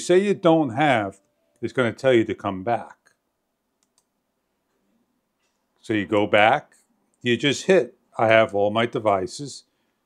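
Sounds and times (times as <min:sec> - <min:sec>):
faint clicks: 0:03.8 - 0:04.2.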